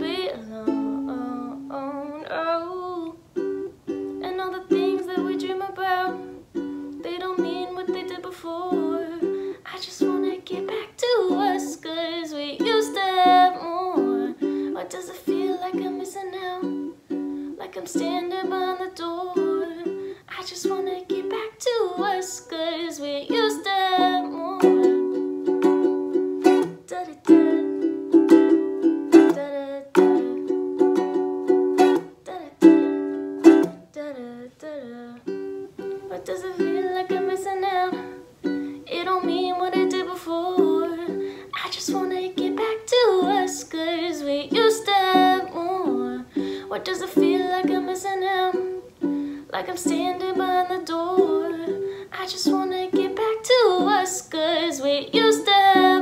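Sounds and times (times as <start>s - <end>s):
ukulele strumming: 0.0s - 56.0s
woman singing: 0.0s - 56.0s.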